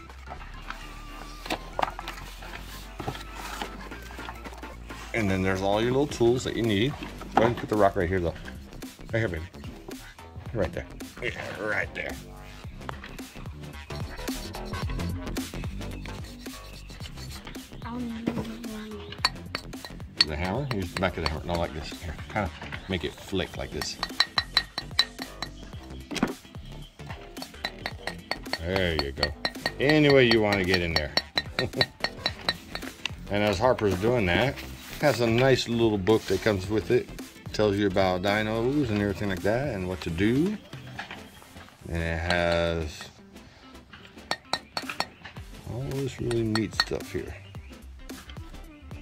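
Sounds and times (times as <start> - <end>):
faint background music: 0.0 - 49.0
hammer tapping sand block: 19.2 - 21.8, 23.7 - 25.7, 27.4 - 33.2, 44.3 - 45.2, 45.8 - 47.2.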